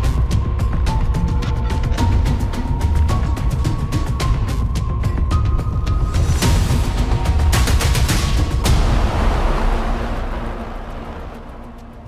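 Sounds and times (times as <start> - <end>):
cinematic impact rumble: 6.6 - 12.0.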